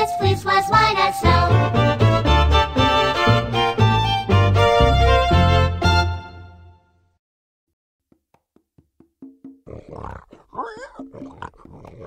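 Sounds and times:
wood-block taps: 8.0 - 9.7
cartoon pigs grunting and oinking: 9.6 - 12.0.

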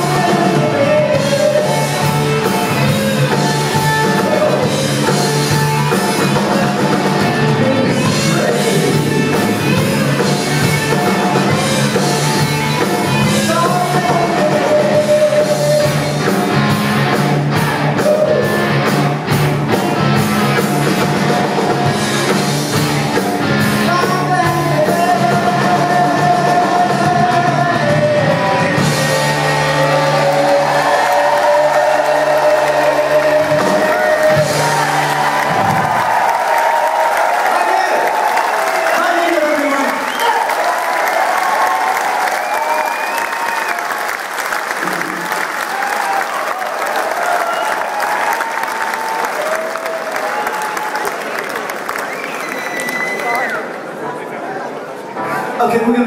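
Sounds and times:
live rock band and singer: 0.0 - 40.9
audience cheering and applauding: 24.8 - 54.4
whistles and shouts: 40.0 - 40.5, 52.0 - 53.7.

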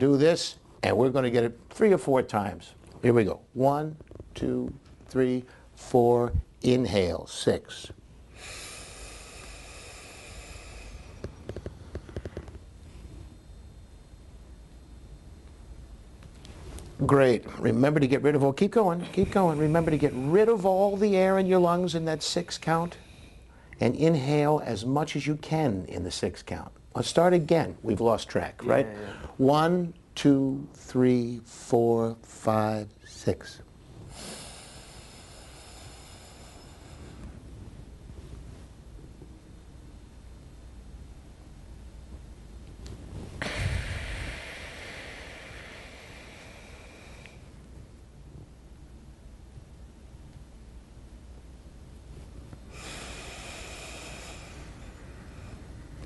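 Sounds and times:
breath through the nose: 8.4 - 12.5, 34.0 - 37.5, 43.4 - 47.6, 52.7 - 55.7.

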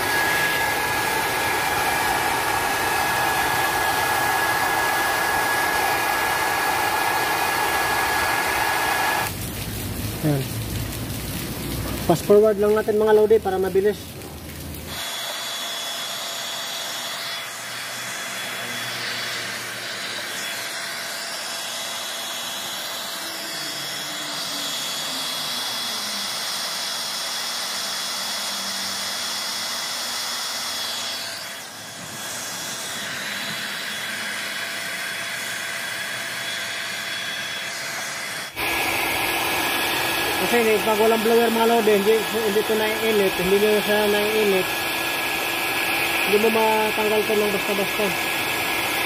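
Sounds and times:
hair dryer blowing: 0.0 - 9.4, 14.9 - 49.0.

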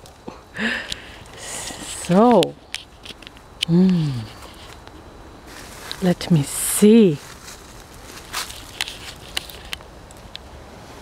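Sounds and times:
light crackles and clicks: 0.0 - 5.0, 7.4 - 10.5
person speaking: 0.6 - 2.6, 3.6 - 4.6, 6.0 - 7.3.

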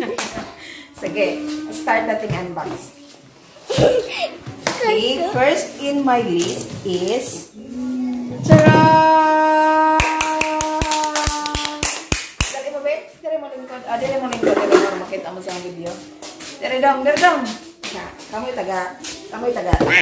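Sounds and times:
voices: 0.0 - 3.3, 4.4 - 12.0.

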